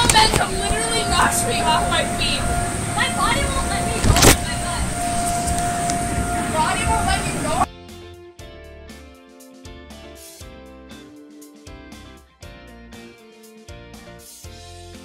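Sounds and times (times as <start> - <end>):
children shouting and squealing: 0.0 - 7.7
steady hum: 0.0 - 7.7
soft guitar music: 0.0 - 15.0.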